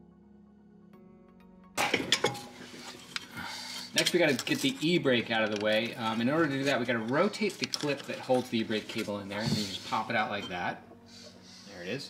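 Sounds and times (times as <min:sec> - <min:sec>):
faint background music: 0:00.0 - 0:12.0
metal handling noise: 0:01.8 - 0:10.7.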